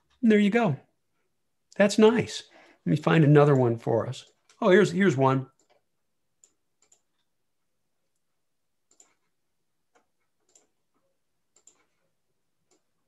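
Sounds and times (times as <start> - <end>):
computer mouse clicks: 5.5 - 7.4, 8.1 - 13.0.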